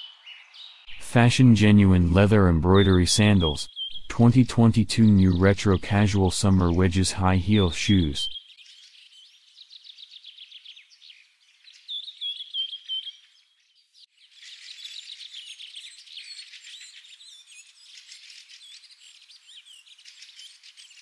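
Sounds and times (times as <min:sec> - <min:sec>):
small birds chirping and trilling: 0:00.0 - 0:00.9, 0:03.7 - 0:04.0, 0:08.3 - 0:21.0.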